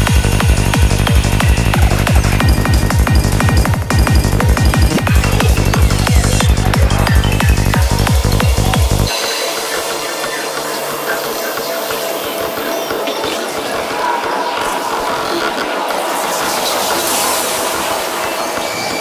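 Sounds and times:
fast synth textures: 0:00.0 - 0:19.0
hissing noise: 0:09.0 - 0:19.0
bright noise swell: 0:09.1 - 0:19.0.

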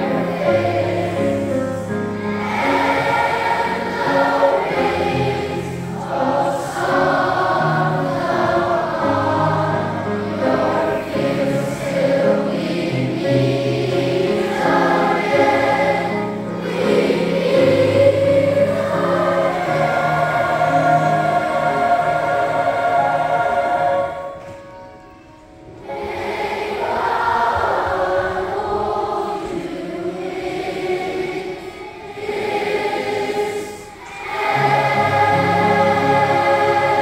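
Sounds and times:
sustained low accompanying notes: 0:00.0 - 0:32.4
children's choir singing: 0:00.0 - 0:37.0.

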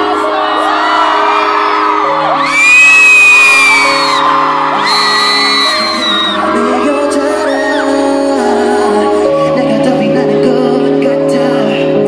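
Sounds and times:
fans screaming: 0:00.0 - 0:08.0
live concert music: 0:00.0 - 0:12.0.

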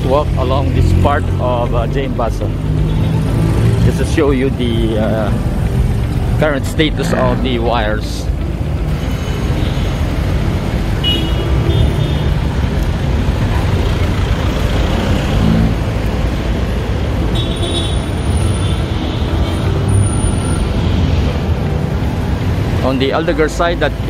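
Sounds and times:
street traffic passing: 0:00.0 - 0:24.0.

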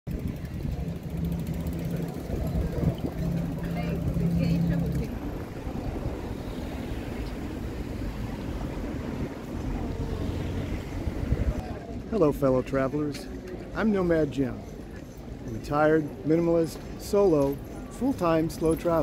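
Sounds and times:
boat engine humming: 0:00.1 - 0:11.8
distant voices: 0:00.1 - 0:12.1.

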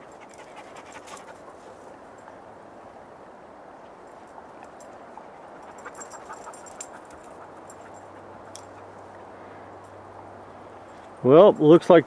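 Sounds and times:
dog panting: 0:00.0 - 0:01.9, 0:05.2 - 0:08.9
faint sharp clicks and crackles: 0:05.6 - 0:09.2.

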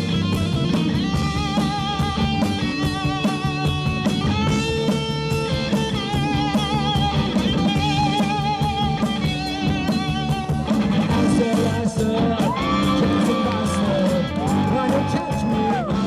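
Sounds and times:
drum kit: 0:00.0 - 0:16.0
electric guitar lead with vibrato: 0:00.0 - 0:16.0
rock band playing: 0:00.0 - 0:16.0.

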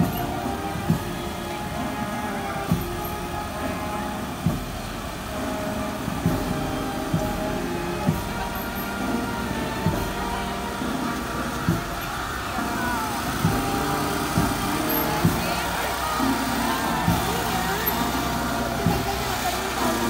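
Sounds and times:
held melody notes: 0:00.0 - 0:20.0
slow drum beat: 0:00.0 - 0:20.0
street and crowd noise: 0:00.0 - 0:20.0.

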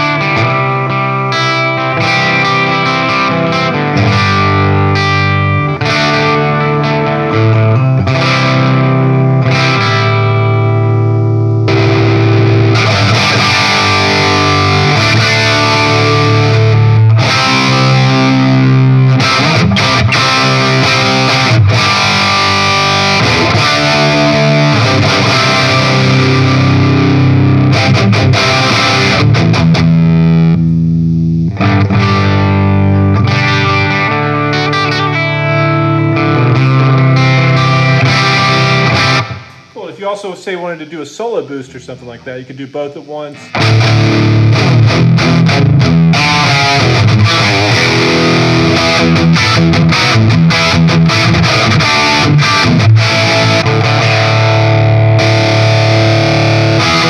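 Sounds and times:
distorted electric guitar chords: 0:00.0 - 0:40.2, 0:41.6 - 0:57.0.

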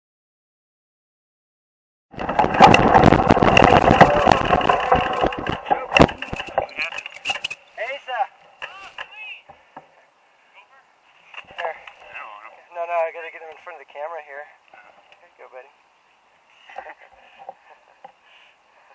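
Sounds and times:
mountain bike rattling on dirt trail: 0:02.1 - 0:08.0.

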